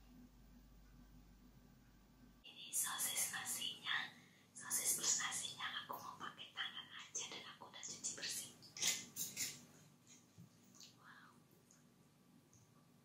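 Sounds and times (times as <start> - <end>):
woman whispering: 2.4 - 8.6.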